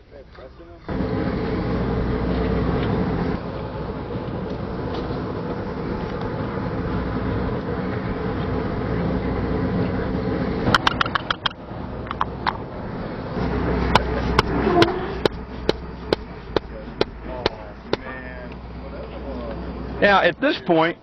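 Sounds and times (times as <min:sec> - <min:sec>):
low outdoor rumble: 0:00.0 - 0:21.0
mallet blows on a rammer: 0:13.4 - 0:18.1.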